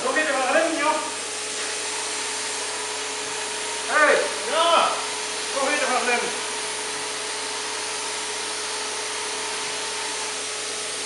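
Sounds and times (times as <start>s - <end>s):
paint spray gun hissing: 0.1s - 11.0s.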